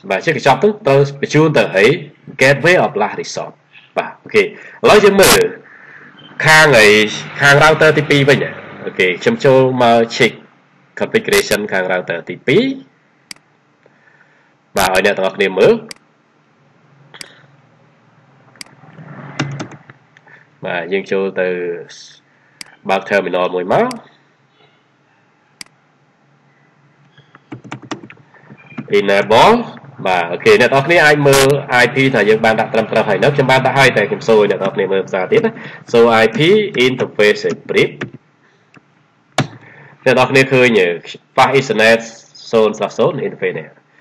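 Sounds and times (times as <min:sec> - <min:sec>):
low steady hum: 0:00.0 - 0:44.0
sharp clicks: 0:13.3 - 0:13.9, 0:15.9 - 0:16.1, 0:19.4 - 0:20.3, 0:27.0 - 0:28.9.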